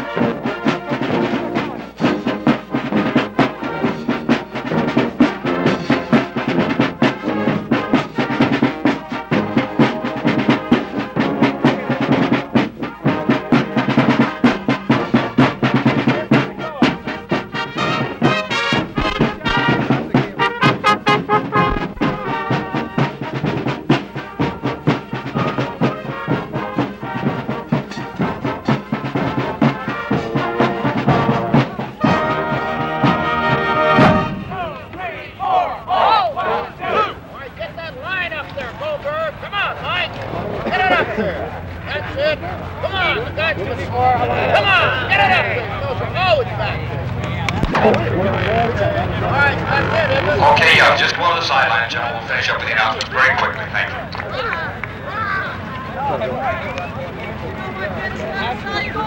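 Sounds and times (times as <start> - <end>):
marching band playing: 0.0 - 59.0.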